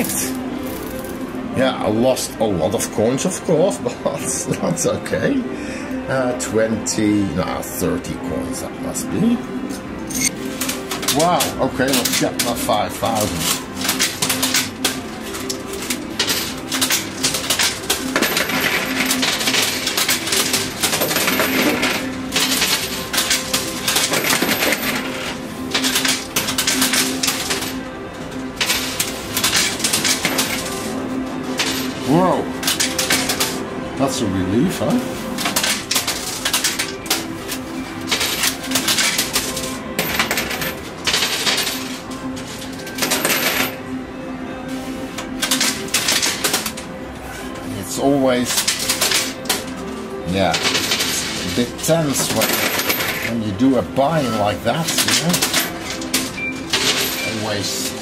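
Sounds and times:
coins clattering in arcade machine: 0:00.0 - 0:01.4, 0:09.6 - 0:44.0, 0:44.7 - 0:58.0.

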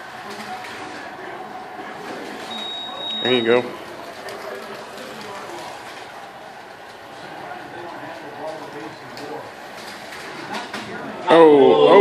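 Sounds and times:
slot cars whirring: 0:00.0 - 0:11.1.

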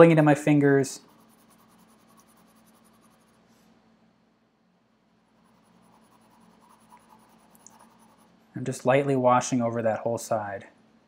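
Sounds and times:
pencil shading on paper: 0:01.0 - 0:03.4, 0:05.4 - 0:08.4.

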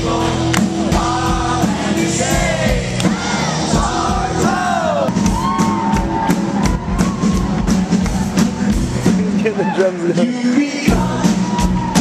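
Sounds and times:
crowd yelling along: 0:00.0 - 0:10.2, 0:10.9 - 0:12.0
bass and drum beat: 0:00.0 - 0:12.0
person singing: 0:09.2 - 0:12.0.

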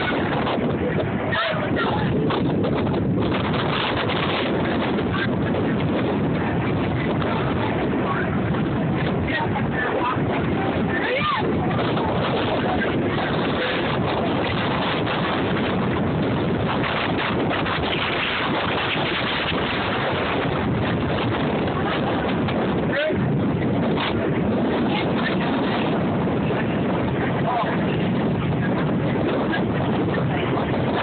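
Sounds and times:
moving train running: 0:00.0 - 0:31.0
wind buffeting microphone: 0:00.0 - 0:31.0.

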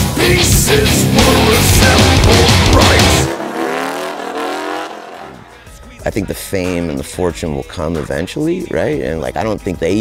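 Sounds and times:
heavy rock music: 0:00.0 - 0:10.0
motorcycle engine: 0:01.2 - 0:05.8.

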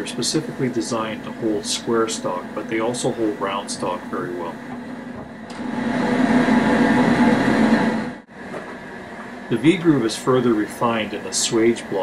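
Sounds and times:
blower drone with rushing noise: 0:00.0 - 0:12.0.

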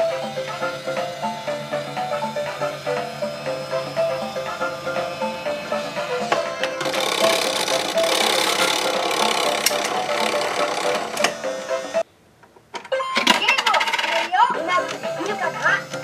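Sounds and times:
claw machine whirring: 0:00.0 - 0:12.0, 0:13.3 - 0:16.0
electronic toy tune: 0:00.0 - 0:12.1, 0:12.9 - 0:16.0.

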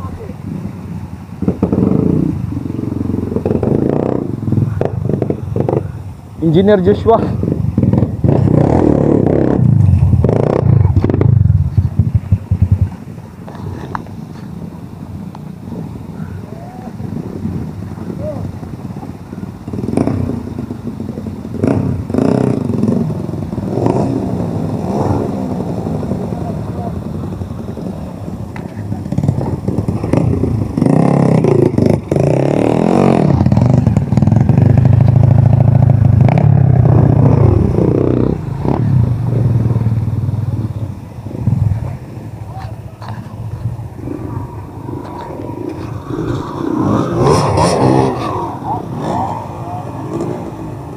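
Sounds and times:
dirt bike engines revving: 0:00.0 - 0:50.9.

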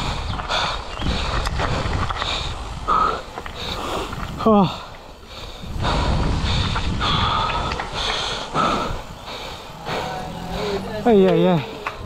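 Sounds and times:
wind on microphone: 0:00.0 - 0:11.0
bike tyre rumble: 0:00.0 - 0:12.0
man breathing hard: 0:00.0 - 0:12.0
man talking: 0:10.0 - 0:11.8.

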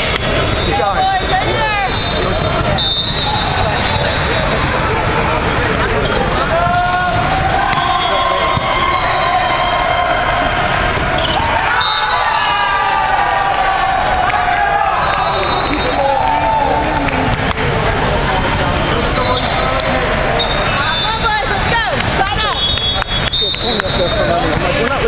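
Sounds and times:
volleyball hits: 0:05.7 - 0:12.1, 0:17.1 - 0:17.9
people shouting: 0:06.4 - 0:17.1
sneakers squeaking on court: 0:11.0 - 0:11.6.

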